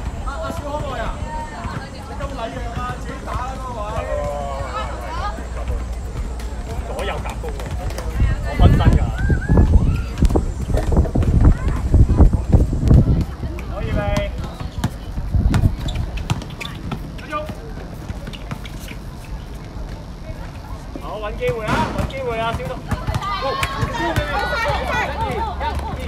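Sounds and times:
basketball bouncing: 0.0 - 12.0, 12.9 - 18.7, 21.4 - 26.0
voices calling out: 0.0 - 26.0.

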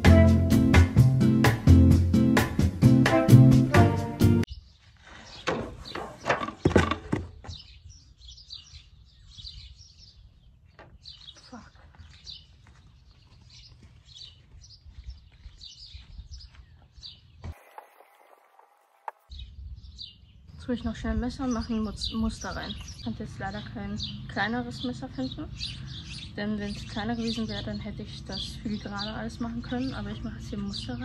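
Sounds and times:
small birds chirping: 4.5 - 31.0.

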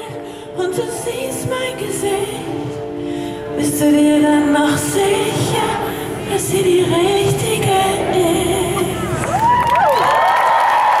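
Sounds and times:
audience cheering and screaming: 9.0 - 11.0.

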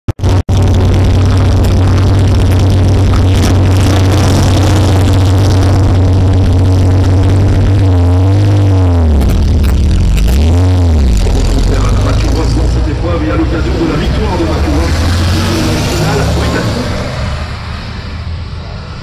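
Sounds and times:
car engine idling and revving: 0.0 - 19.0.

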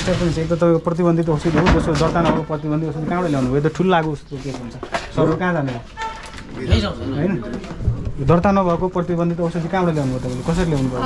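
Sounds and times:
people talking: 6.5 - 11.0.

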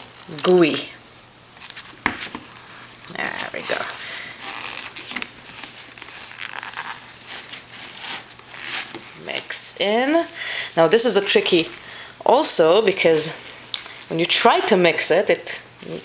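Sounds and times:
gloved hands mixing paste: 1.6 - 14.8.

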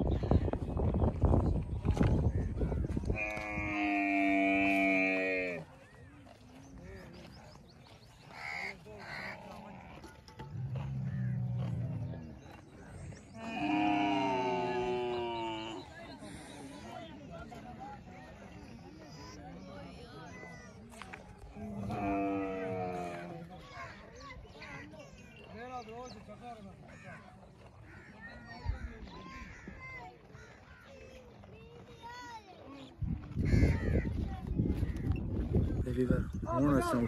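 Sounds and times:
camel grumbling and moaning: 9.6 - 12.4, 13.3 - 15.9, 21.6 - 23.4.

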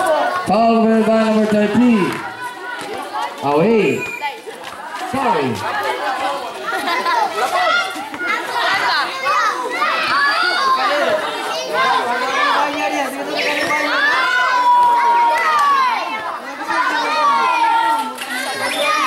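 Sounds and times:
crowd shouting and chattering: 0.0 - 19.0.

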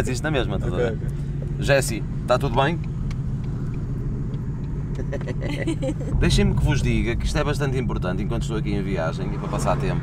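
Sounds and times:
car engine rumble inside cabin: 0.0 - 10.0
road noise: 0.0 - 10.0.

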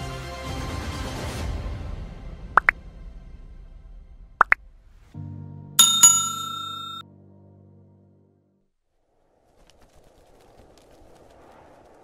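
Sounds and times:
bright bell struck: 5.8 - 7.0.

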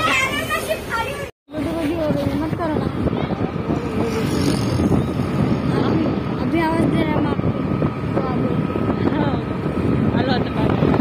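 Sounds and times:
scooter and road noise: 0.0 - 11.0
wind buffeting microphone: 1.5 - 11.0.

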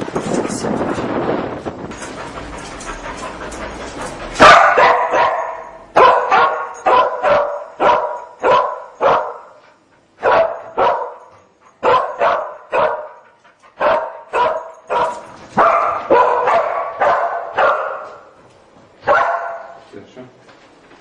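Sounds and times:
dog barking: 4.4 - 9.5, 10.2 - 13.2, 13.8 - 18.3, 19.0 - 19.8.

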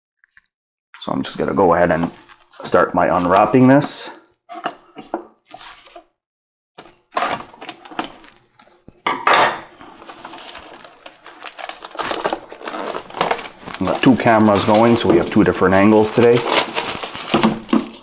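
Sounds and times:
plastic shrink wrap crinkling: 6.8 - 8.8, 9.7 - 18.0.

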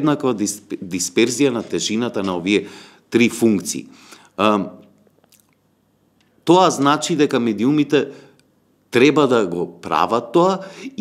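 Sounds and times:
faint mouth clicks: 4.8 - 6.4.

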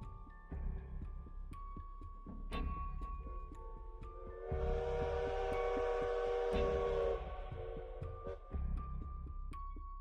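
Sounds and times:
dark background music: 0.0 - 10.0
steam whistle blowing: 4.5 - 8.0.

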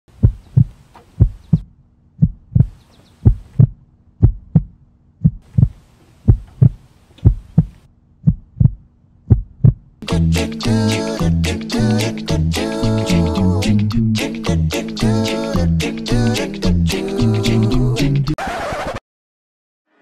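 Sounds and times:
slow heartbeat: 0.1 - 9.9.

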